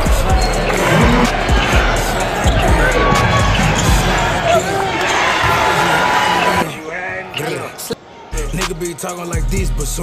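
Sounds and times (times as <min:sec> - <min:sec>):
voices in a hall: 0:00.0 - 0:10.0
shoes squeaking on gym floor: 0:00.3 - 0:01.4.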